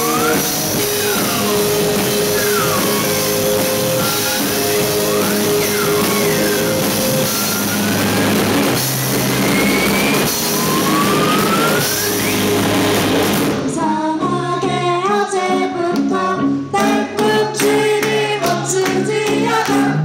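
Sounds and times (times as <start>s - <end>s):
drum kit: 0.0s - 14.1s
high sliding guitar notes: 0.0s - 14.8s
distorted electric guitars: 0.0s - 20.0s.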